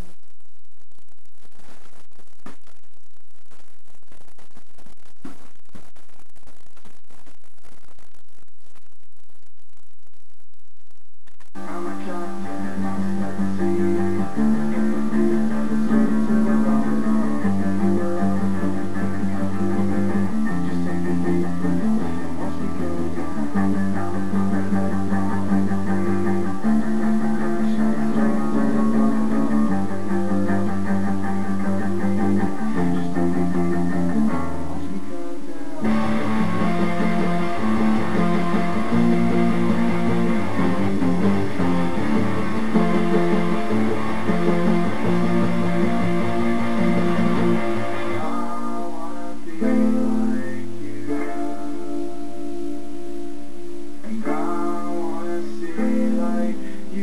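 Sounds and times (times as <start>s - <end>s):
electric guitar chords: 11.6s - 57.0s
bass line: 35.7s - 50.5s.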